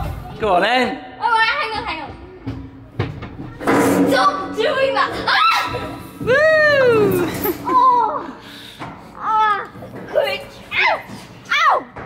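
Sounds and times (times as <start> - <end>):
knocks inside metal slide: 3.0 - 7.5.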